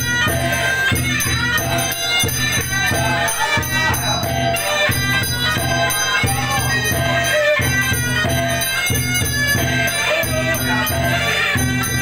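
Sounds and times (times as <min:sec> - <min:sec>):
reedy shawm melody: 0:00.0 - 0:12.0
voices chanting: 0:00.0 - 0:12.0.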